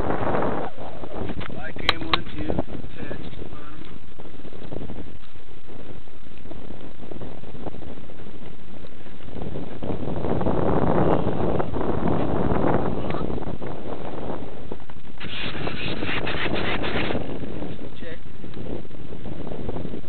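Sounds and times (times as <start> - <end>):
wind buffeting microphone: 0.0 - 20.0
harsh crackling: 14.7 - 19.2.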